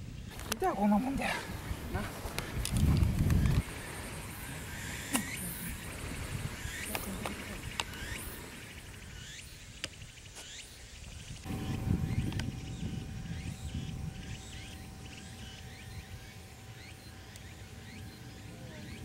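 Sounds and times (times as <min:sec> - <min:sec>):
birds chirping: 0:00.0 - 0:19.0
faint steady hum: 0:00.0 - 0:19.0
low rumble: 0:11.4 - 0:19.0.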